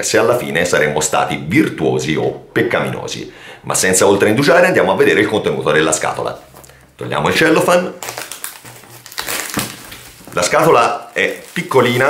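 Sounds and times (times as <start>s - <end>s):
plastic shrink-wrap crackling: 7.4s - 12.0s.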